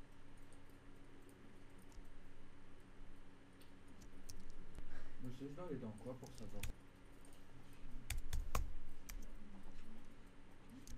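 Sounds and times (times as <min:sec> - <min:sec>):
computer keyboard key clicks: 0:08.1 - 0:09.3.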